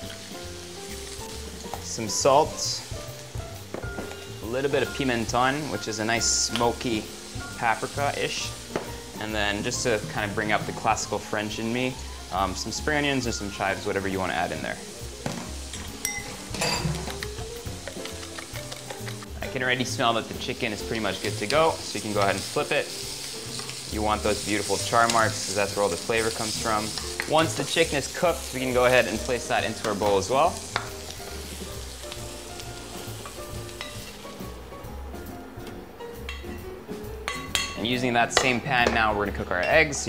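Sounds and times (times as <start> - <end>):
chicken sizzling in frying pan: 0.0 - 35.4
background music: 0.0 - 40.0.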